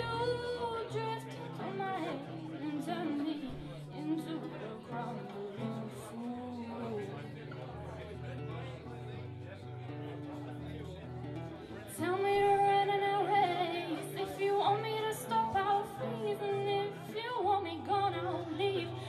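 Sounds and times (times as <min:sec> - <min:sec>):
woman singing: 0:00.0 - 0:07.0, 0:11.9 - 0:19.0
acoustic guitar chords: 0:00.0 - 0:19.0.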